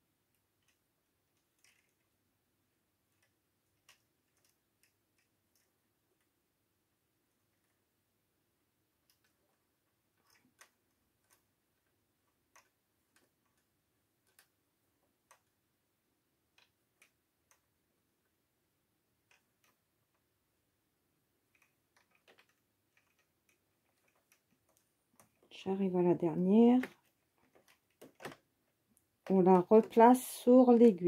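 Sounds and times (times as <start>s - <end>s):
metal hook tapping plastic needles: 3.1s - 6.3s, 9.0s - 15.6s, 21.5s - 25.6s, 26.5s - 30.9s.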